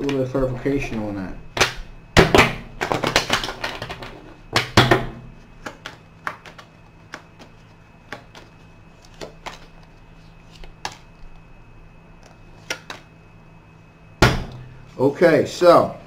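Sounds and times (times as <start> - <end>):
faint low hum: 0.0 - 16.0
cards being shuffled: 5.5 - 11.2, 12.2 - 13.1.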